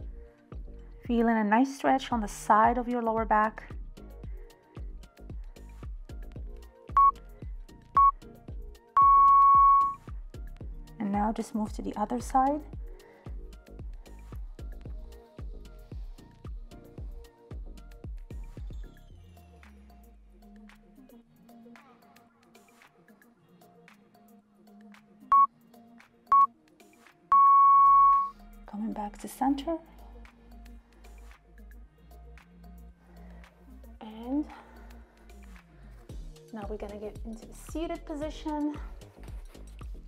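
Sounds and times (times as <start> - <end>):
background music with steady beat: 0.0 - 40.0
countdown timer beeping: 6.9 - 7.2, 8.0 - 8.2, 9.0 - 10.0, 27.3 - 28.3.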